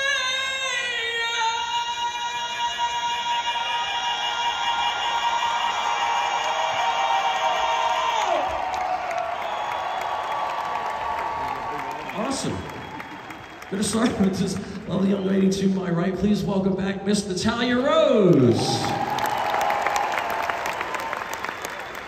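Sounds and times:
crowd cheering: 0:02.5 - 0:16.0, 0:18.1 - 0:22.0.

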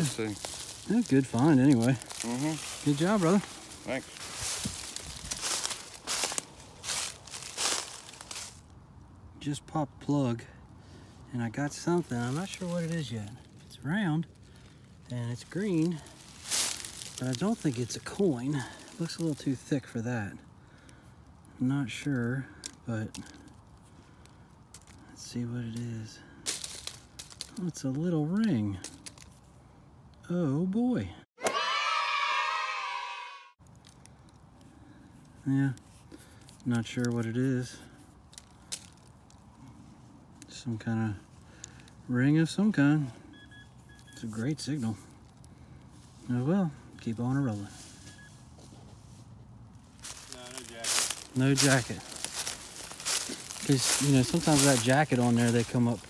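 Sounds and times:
footsteps crunching dry leaves: 0:00.0 - 0:08.7, 0:11.6 - 0:19.8, 0:26.1 - 0:29.5, 0:35.4 - 0:40.0, 0:44.2 - 0:56.0
high-pitched cheering voices: 0:31.4 - 0:33.6.

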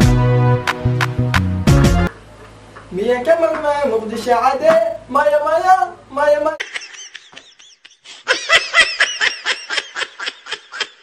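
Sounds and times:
high-pitched laughing bursts: 0:06.6 - 0:11.0.

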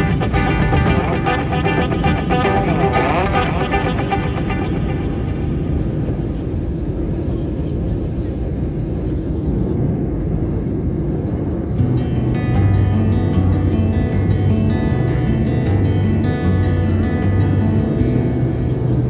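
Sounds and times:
strummed guitar music: 0:00.0 - 0:06.4, 0:11.8 - 0:19.0
music: 0:00.0 - 0:06.9, 0:11.7 - 0:19.0
airliner cabin engine roar: 0:00.0 - 0:19.0.

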